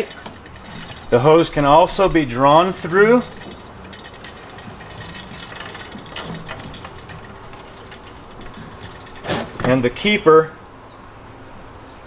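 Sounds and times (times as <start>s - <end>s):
garden hose handling: 0.0s - 10.2s.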